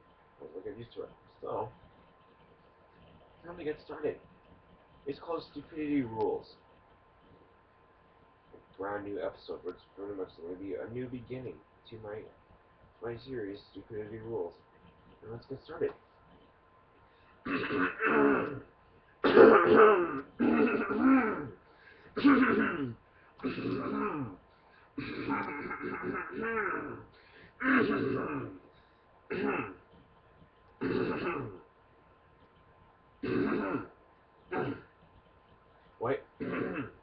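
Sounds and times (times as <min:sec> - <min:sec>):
person coughing and clearing throat: 0:17.4 - 0:24.4, 0:25.0 - 0:27.0, 0:27.6 - 0:28.6, 0:29.3 - 0:29.8, 0:30.8 - 0:31.7, 0:33.2 - 0:34.9, 0:36.4 - 0:37.0.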